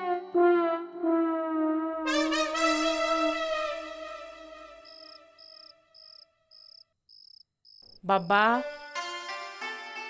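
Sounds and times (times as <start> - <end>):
cricket chirping: 4.2 - 8.6.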